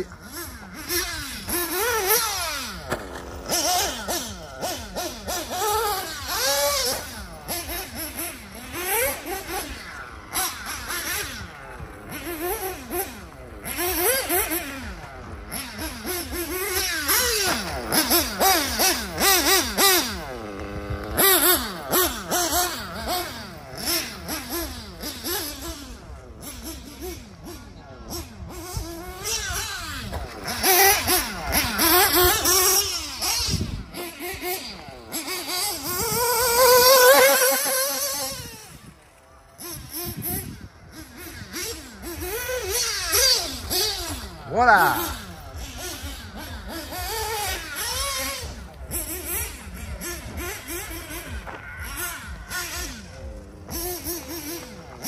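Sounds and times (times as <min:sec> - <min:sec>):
nitro engine revving: 0:00.0 - 0:55.0.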